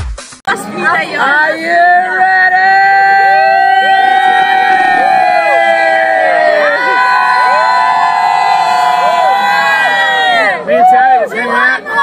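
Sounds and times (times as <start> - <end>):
crowd cheering and screaming: 1.3 - 12.0.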